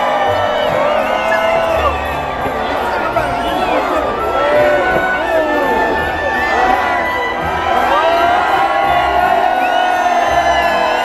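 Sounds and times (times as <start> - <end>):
large crowd cheering and shouting: 0.0 - 11.0.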